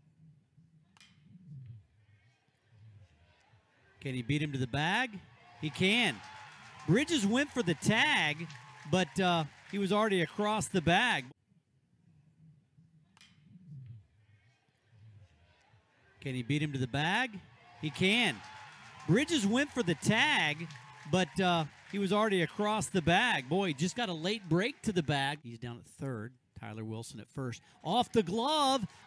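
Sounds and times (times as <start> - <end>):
faint ballpark background: 0.0 - 11.4, 12.8 - 29.0.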